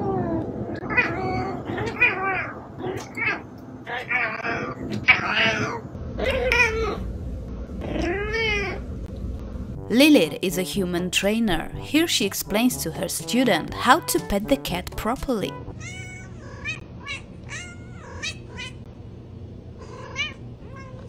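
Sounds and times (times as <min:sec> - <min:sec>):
cat meowing: 0:07.8 - 0:08.8, 0:15.8 - 0:18.8, 0:19.8 - 0:21.0.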